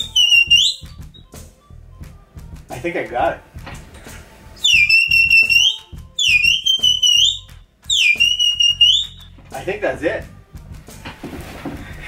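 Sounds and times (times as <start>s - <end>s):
shrill herding whistle blasts: 0.0s - 1.3s, 4.6s - 9.4s.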